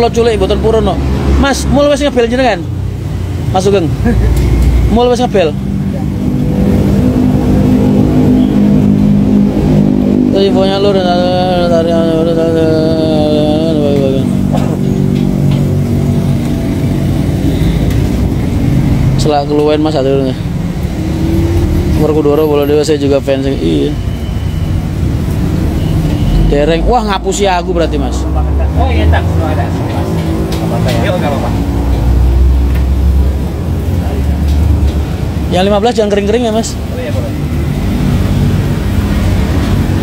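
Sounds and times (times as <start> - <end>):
vehicle engine and road rumble: 0.0 - 40.0.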